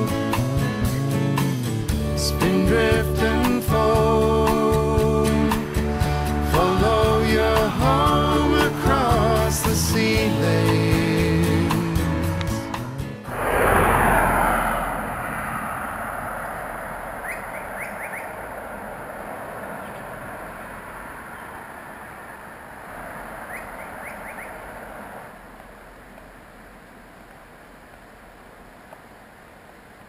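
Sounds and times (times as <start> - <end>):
rushing noise: 13.2 - 27.0
whistled bird chirps: 17.2 - 18.4, 23.4 - 24.6.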